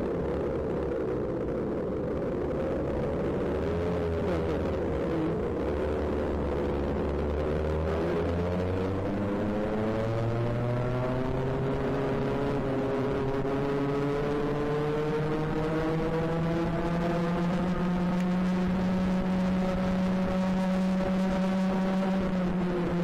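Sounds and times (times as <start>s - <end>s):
kart engine accelerating: 3.2s - 23.0s.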